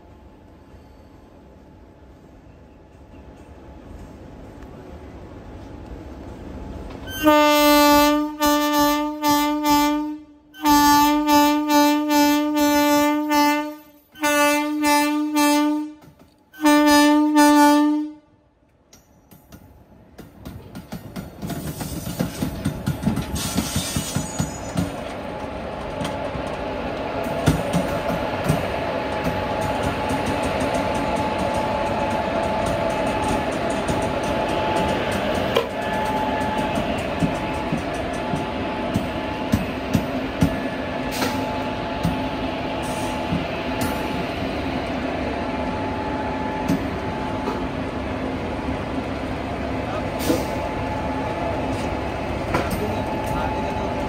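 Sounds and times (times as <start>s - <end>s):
electric locomotive hum and whine: 0.0s - 54.0s
wheel clacks over rail joints: 18.9s - 26.7s.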